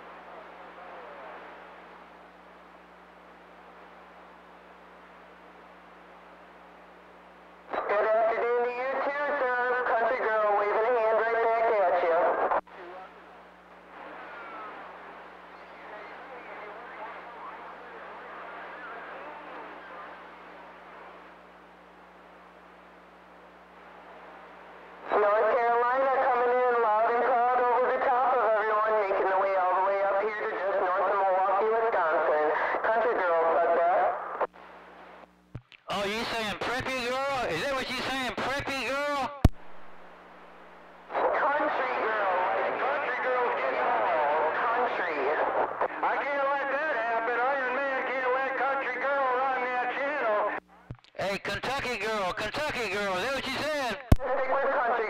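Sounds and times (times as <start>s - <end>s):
steady radio hum: 0.0s - 55.0s
garbled voices over cb radio: 7.7s - 13.2s, 13.9s - 20.4s, 25.0s - 34.5s, 35.8s - 39.5s, 41.1s - 50.6s, 51.2s - 55.0s.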